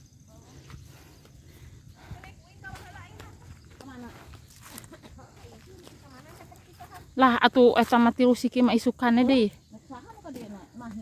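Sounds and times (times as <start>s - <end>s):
footsteps on dirt path: 0.0s - 8.3s.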